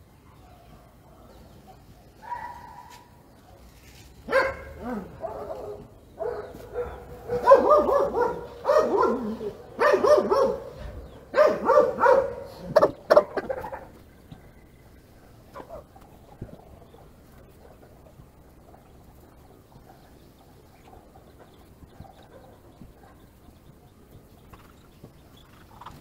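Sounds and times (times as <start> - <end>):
dog barking: 0.3 - 3.7, 4.3 - 13.5, 15.2 - 16.0, 20.8 - 23.3.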